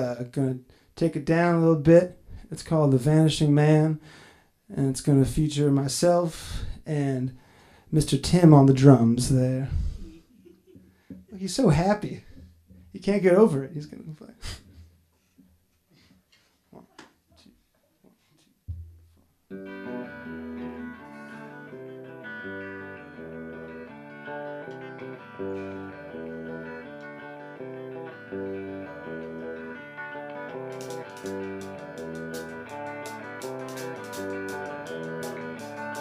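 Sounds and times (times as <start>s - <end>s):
guitar playing slow song: 19.5s - 36.0s
drums with cymbal strokes: 30.7s - 36.0s.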